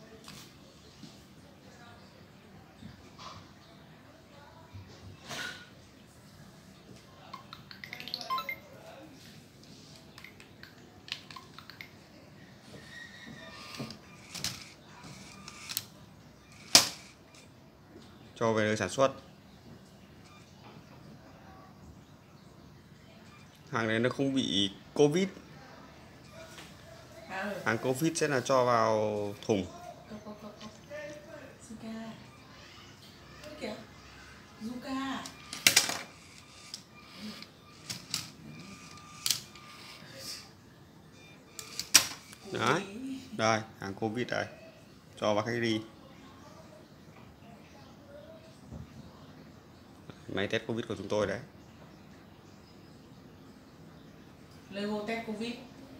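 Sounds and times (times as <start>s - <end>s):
plastic parts clicking and knocking: 13.6s - 15.9s, 16.6s - 17.4s, 35.2s - 39.6s
faint motor whine: 32.2s - 40.6s.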